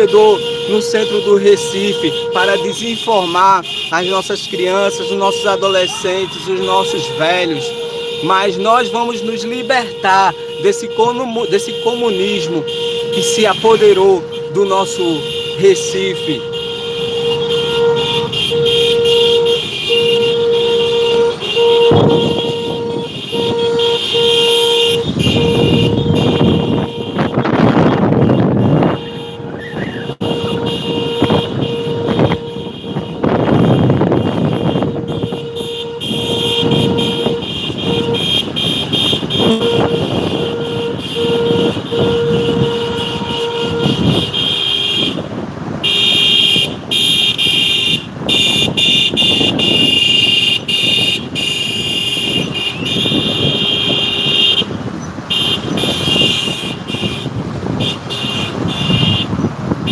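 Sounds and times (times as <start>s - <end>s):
car horn short beeps: 0.0s - 59.9s
traffic and engine noise: 0.0s - 59.9s.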